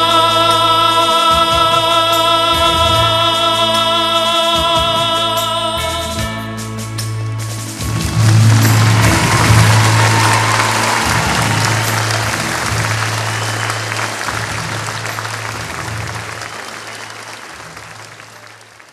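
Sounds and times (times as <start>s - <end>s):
audience applauding: 7.8s - 18.9s.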